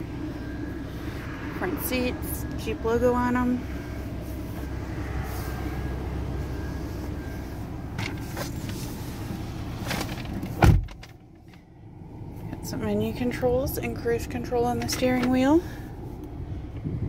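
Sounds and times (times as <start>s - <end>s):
outdoor rumble: 0.0s - 17.0s
car door shutting: 9.8s - 11.2s.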